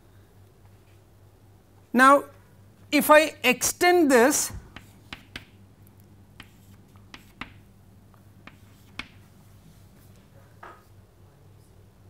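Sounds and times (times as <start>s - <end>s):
chalk tapping on a chalkboard: 4.7s - 5.6s, 6.4s - 7.6s, 8.4s - 9.2s.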